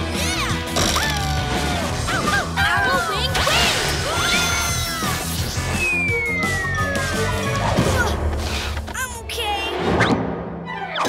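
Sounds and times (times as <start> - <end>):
cartoon background music: 0.0 - 11.0
falling whistle: 5.6 - 7.1.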